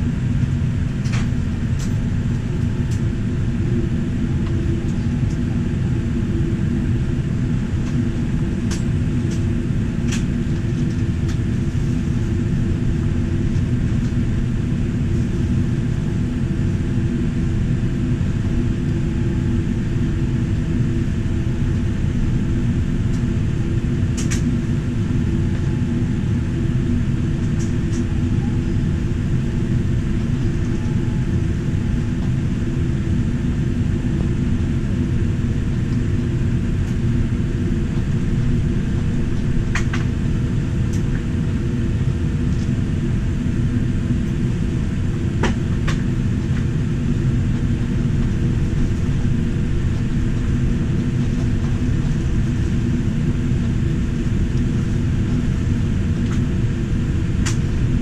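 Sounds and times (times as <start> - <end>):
aircraft cabin engine rumble: 0.0 - 58.0.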